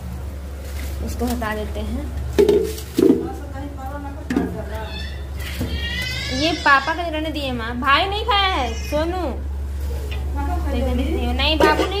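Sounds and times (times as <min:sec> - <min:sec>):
plastic container knocking on counter: 0:02.4 - 0:03.3.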